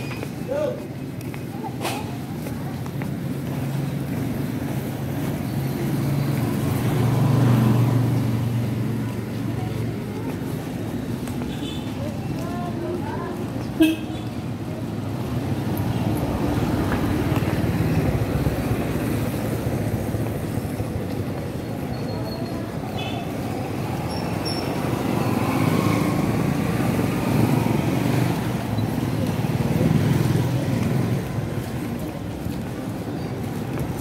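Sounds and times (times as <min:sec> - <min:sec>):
low rumble of passing vehicles: 0:00.0 - 0:34.0.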